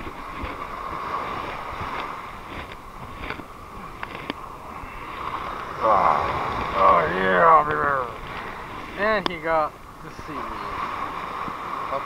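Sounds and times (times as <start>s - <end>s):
small waves washing over sand: 0.0s - 12.0s
wind rumbling on microphone: 0.0s - 12.0s.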